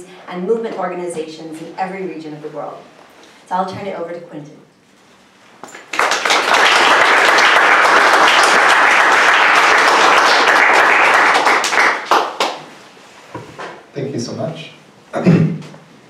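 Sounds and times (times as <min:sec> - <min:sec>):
audience applauding: 0:05.8 - 0:12.7.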